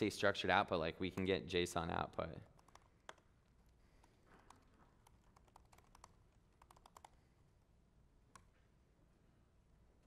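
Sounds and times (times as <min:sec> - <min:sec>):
typing on computer keyboard: 0:02.4 - 0:07.2.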